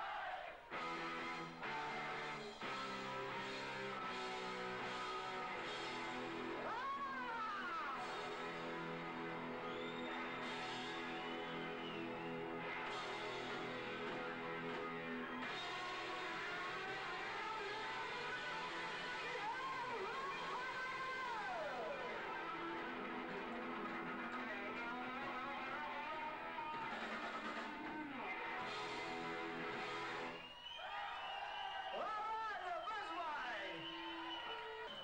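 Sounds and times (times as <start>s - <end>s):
distorted electric guitar lead: 0.7s - 30.4s
live rock band playing: 0.8s - 7.1s, 7.8s - 30.4s.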